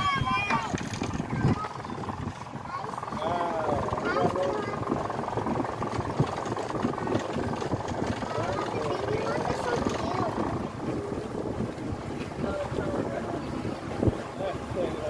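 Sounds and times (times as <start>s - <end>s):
boat motor running: 0.0s - 15.0s
water noise: 0.0s - 15.0s
wind on microphone: 0.0s - 15.0s.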